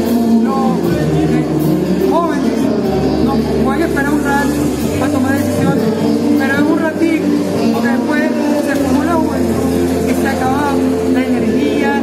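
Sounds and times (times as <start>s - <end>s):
music with long held tones: 0.0s - 12.0s
man talking: 0.1s - 12.0s.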